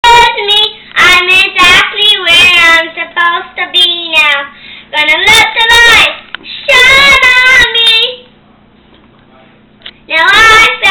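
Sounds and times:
child singing loudly: 0.0 - 8.2, 10.1 - 10.9.

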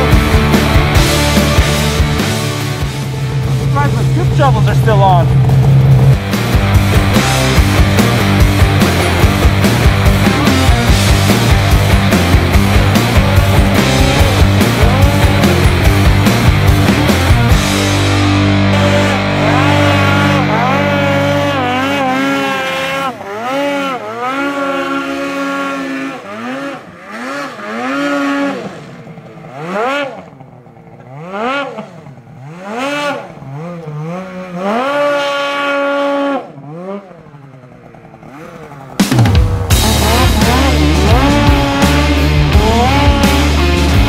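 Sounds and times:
snowmobile engine revving: 0.0 - 44.0.

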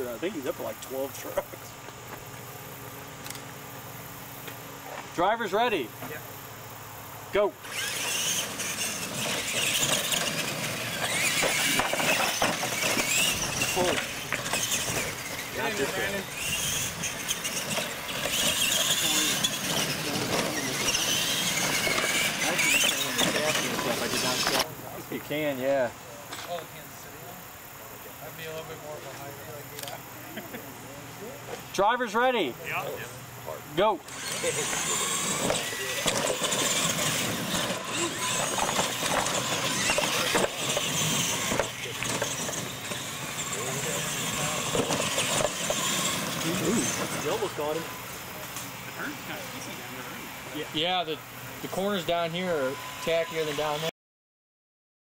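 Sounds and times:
tyres churning through dirt: 4.4 - 27.2, 31.3 - 53.9
toy truck motors whining: 7.3 - 27.0, 31.2 - 53.9.

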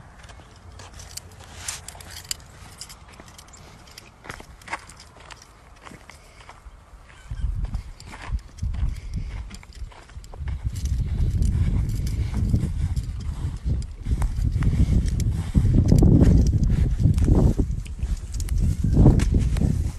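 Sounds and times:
footsteps in dry grass: 0.0 - 19.9.

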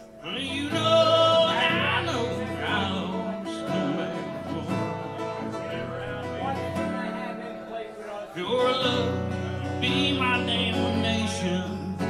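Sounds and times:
amplified electric guitar: 0.0 - 12.0
person singing: 0.0 - 12.0.

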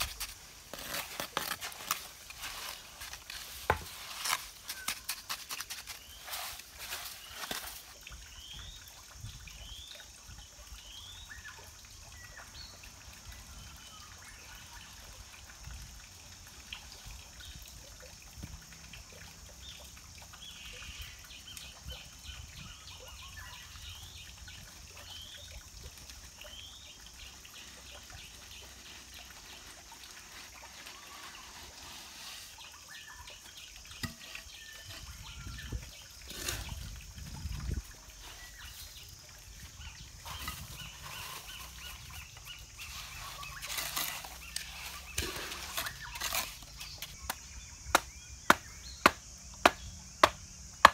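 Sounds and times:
small birds chirping: 19.5 - 50.9.

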